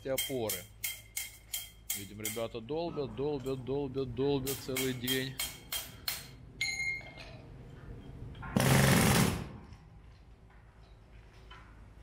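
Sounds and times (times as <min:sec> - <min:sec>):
jackhammer hammering concrete: 0:08.6 - 0:09.5.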